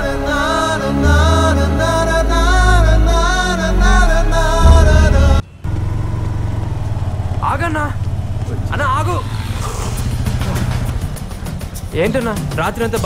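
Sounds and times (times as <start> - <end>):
music: 0.0 - 5.4, 10.2 - 13.0
low pulsing engine rumble: 2.6 - 11.3
man's voice: 11.9 - 13.0.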